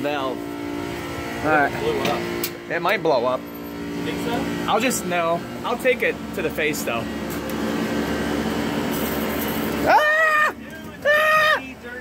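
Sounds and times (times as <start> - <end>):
person yelping: 9.8 - 11.8.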